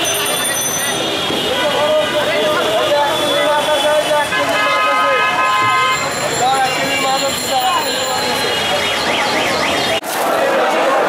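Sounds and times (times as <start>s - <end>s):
market crowd voices: 0.0s - 11.0s.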